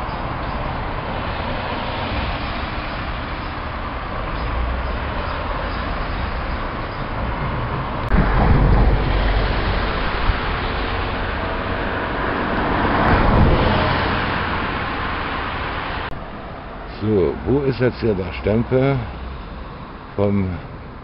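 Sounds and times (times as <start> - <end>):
road traffic passing: 0.0 - 21.0.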